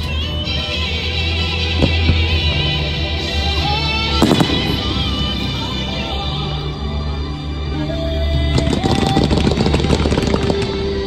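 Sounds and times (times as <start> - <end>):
show music with sustained tones: 0.0 - 11.0
fireworks crackling: 4.2 - 6.5, 8.5 - 11.0.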